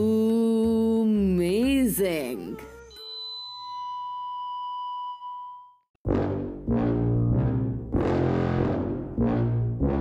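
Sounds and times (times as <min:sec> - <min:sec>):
struck chime ringing: 0:02.9 - 0:05.8.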